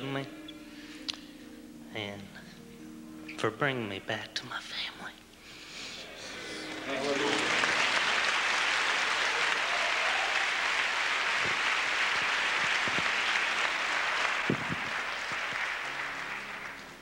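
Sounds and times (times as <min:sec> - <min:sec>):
congregation applauding: 0:06.0 - 0:17.0.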